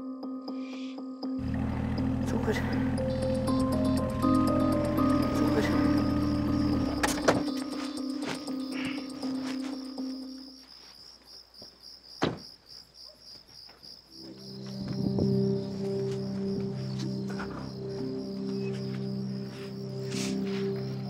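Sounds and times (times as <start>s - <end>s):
low sustained background music: 0.0s - 10.6s, 14.1s - 21.0s
night insects chirping: 0.6s - 21.0s.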